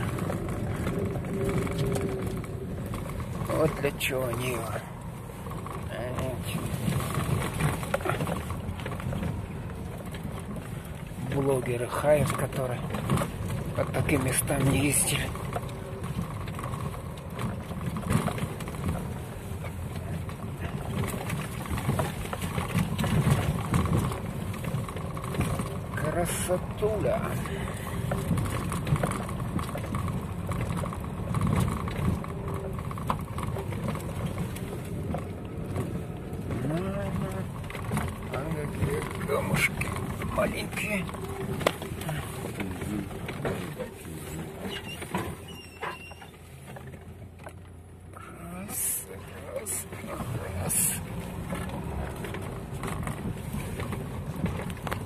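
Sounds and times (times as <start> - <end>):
car knocks and rattles: 0.0 - 48.2, 49.2 - 55.0
engine and drivetrain rumble: 0.0 - 55.0.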